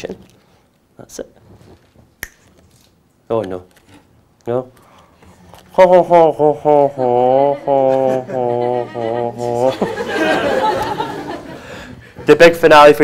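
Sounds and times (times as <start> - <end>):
man's voice: 5.7 - 10.6
audience laughter: 6.6 - 12.0.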